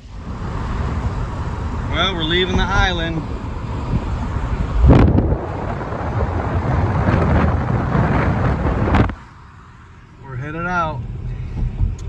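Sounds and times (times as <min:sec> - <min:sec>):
road noise: 0:00.0 - 0:12.0
wind buffeting microphone: 0:00.1 - 0:09.4.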